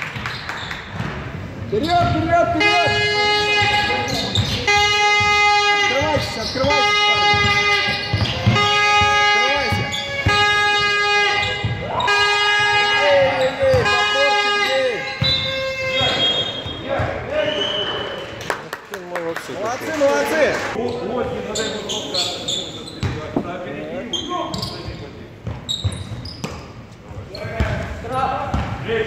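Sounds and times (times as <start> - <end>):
horn short blasts: 2.4 - 16.8.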